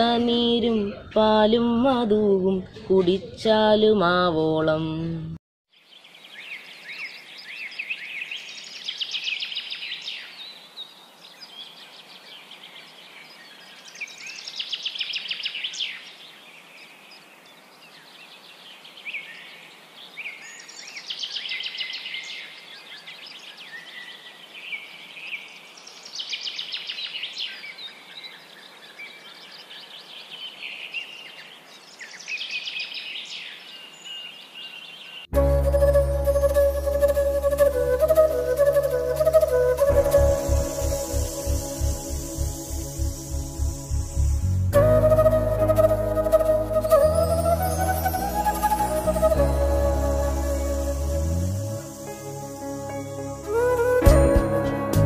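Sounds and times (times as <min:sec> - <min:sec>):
faint steady hiss: 0:39.8 - 0:45.0.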